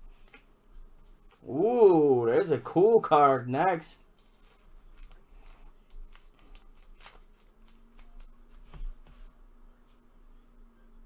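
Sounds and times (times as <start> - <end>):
trading cards rustling and clicking: 4.1 - 9.0.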